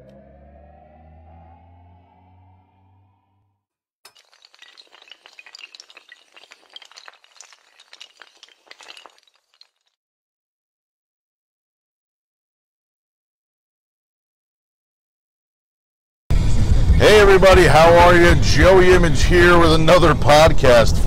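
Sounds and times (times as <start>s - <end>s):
low drone rising in pitch: 0.0s - 3.3s
clatter of small hard pieces: 4.1s - 9.9s.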